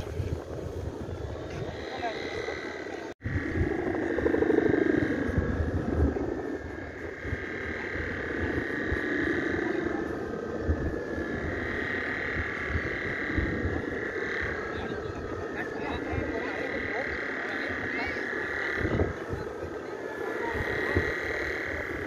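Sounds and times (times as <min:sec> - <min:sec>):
kite hummer droning: 0:00.0 - 0:22.0
wind rumbling on microphone: 0:00.0 - 0:22.0.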